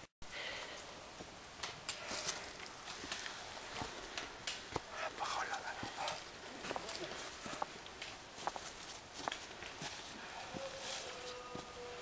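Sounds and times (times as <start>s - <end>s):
footsteps on dry leaves: 2.0s - 11.8s.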